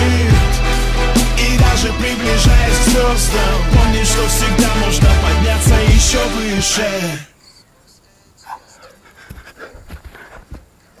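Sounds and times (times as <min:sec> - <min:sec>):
man panting: 0:08.3 - 0:11.0.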